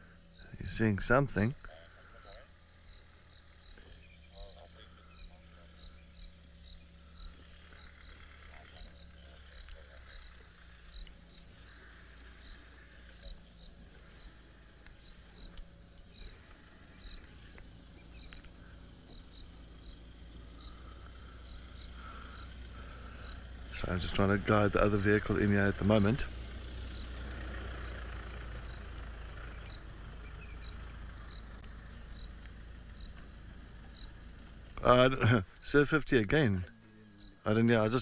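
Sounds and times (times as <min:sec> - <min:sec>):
low steady hum: 0:00.0 - 0:38.0.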